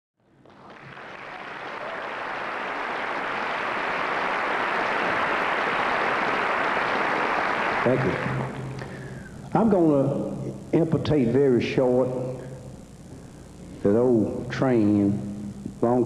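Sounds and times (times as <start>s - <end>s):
audience applauding: 0.4s - 9.2s.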